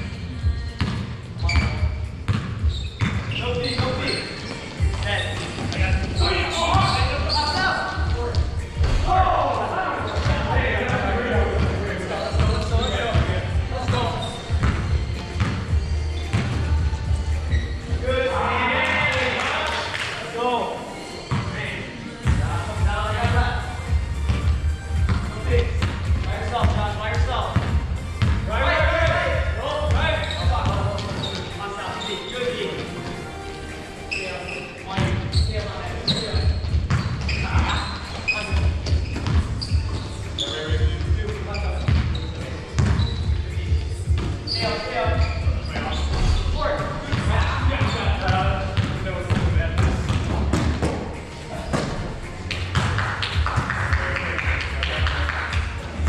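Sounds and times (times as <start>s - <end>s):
background music: 0.0s - 56.0s
basketball bouncing on hardwood floor: 27.6s - 28.5s, 42.8s - 43.1s, 47.1s - 51.0s.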